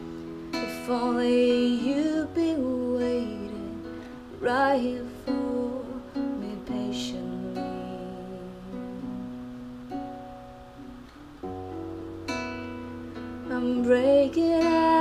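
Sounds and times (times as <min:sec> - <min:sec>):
acoustic guitar strumming chords: 0:00.0 - 0:15.0.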